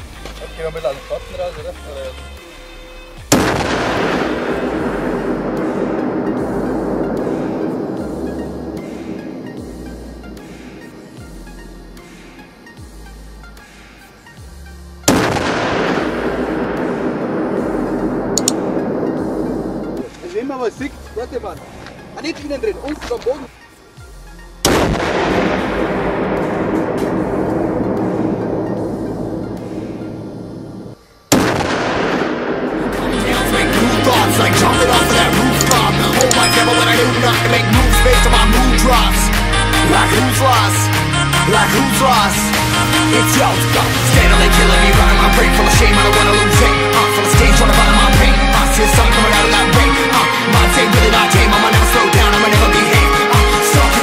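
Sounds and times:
background music: 0:00.0 - 0:54.0
explosion with rumbling decay: 0:03.3 - 0:11.2, 0:15.1 - 0:20.0, 0:24.6 - 0:33.2.

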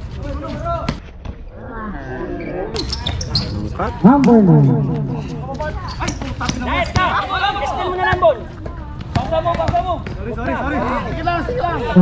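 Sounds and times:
players calling out: 0:03.4 - 0:08.1.

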